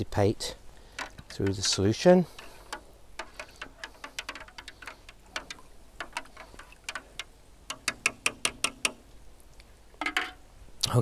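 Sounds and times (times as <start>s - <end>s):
plastic rod tapping plastic tray: 0.9s - 9.0s, 10.0s - 10.4s.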